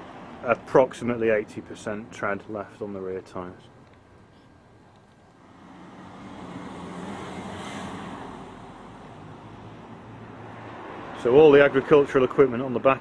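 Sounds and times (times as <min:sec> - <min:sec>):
vehicle passing: 0:05.4 - 0:13.0.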